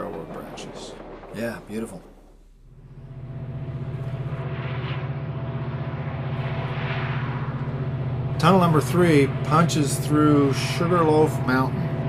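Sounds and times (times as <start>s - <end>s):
diesel locomotive engines throbbing: 0.0s - 12.0s
faint steady whine: 0.0s - 12.0s.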